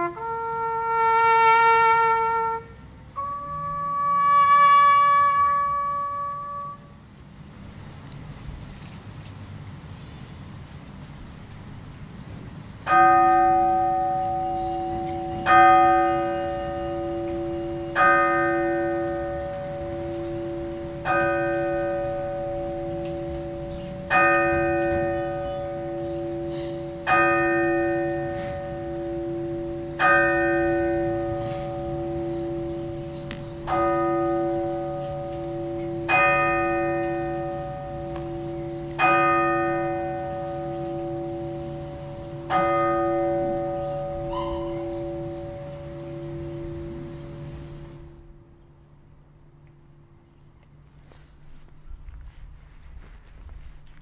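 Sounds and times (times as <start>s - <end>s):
church bell ringing: 0.0s - 0.3s, 3.2s - 6.8s, 12.8s - 48.6s.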